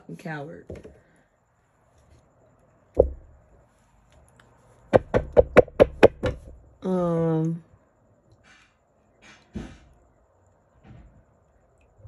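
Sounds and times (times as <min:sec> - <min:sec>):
knocks on tabletop: 0:03.0 - 0:03.2, 0:04.9 - 0:06.6.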